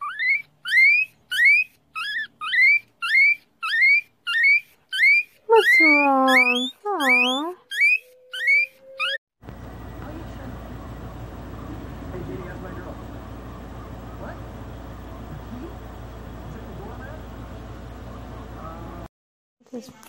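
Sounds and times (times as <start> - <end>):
guinea pig wheeking: 0.0 - 9.2
longer lower guinea pig calls: 0.0 - 9.2.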